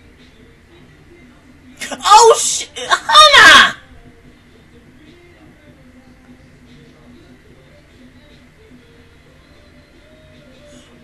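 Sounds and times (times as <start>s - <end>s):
person shrieking: 1.8s - 3.8s.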